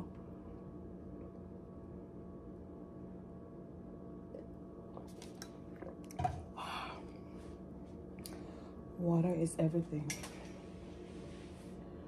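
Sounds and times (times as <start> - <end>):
steady low hum: 0.0 - 12.0
person swallowing water: 4.3 - 6.6.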